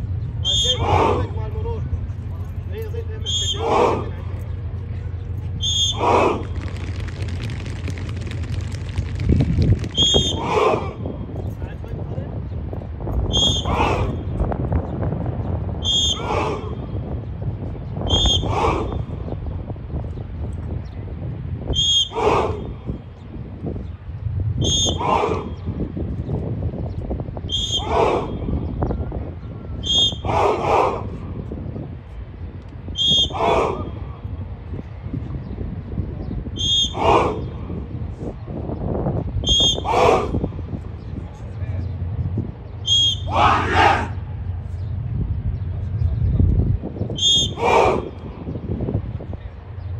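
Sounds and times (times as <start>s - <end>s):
whistle double blasts: 0.4s - 1.0s, 3.2s - 3.9s, 5.6s - 6.1s, 9.9s - 10.6s, 13.2s - 14.4s, 15.8s - 16.4s, 18.0s - 19.0s, 21.7s - 22.4s, 24.6s - 25.1s, 27.5s - 28.4s, 29.8s - 30.3s, 32.9s - 33.5s, 36.6s - 37.2s, 39.4s - 40.0s, 42.8s - 43.9s, 47.0s - 47.8s
group shouting in unison: 0.5s - 1.4s, 3.4s - 4.2s, 5.8s - 6.5s, 10.2s - 11.1s, 13.6s - 14.2s, 16.1s - 16.9s, 18.3s - 19.2s, 22.1s - 22.7s, 24.8s - 25.7s, 27.7s - 28.5s, 30.1s - 31.2s, 33.1s - 34.0s, 36.8s - 37.6s, 39.7s - 40.5s, 43.2s - 44.2s, 47.4s - 48.2s.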